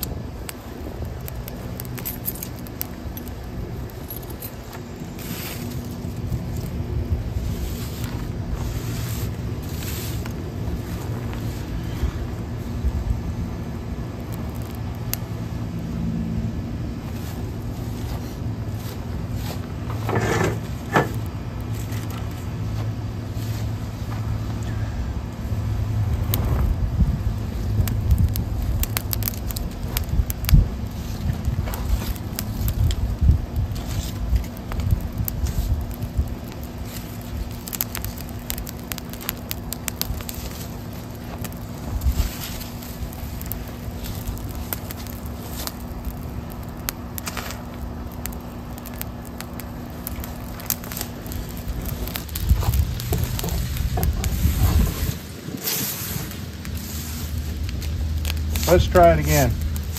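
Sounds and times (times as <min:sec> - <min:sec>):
leaves crackling in fire: 0:00.0 - 0:59.9
low rumble: 0:00.0 - 0:59.9.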